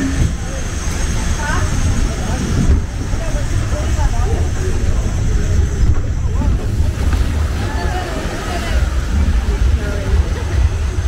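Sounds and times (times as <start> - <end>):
water rushing and splashing: 0.0 - 11.0
wind rumble on microphone: 0.0 - 11.0.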